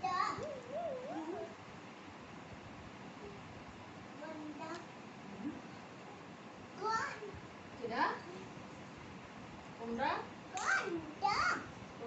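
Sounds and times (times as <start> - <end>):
child's sing-song voice: 0.0 - 1.5.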